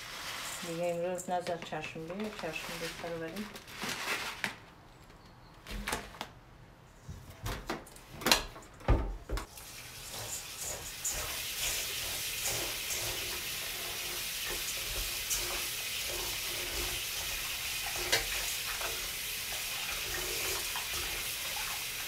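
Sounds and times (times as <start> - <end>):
tap water running into bowl: 9.4 - 22.0.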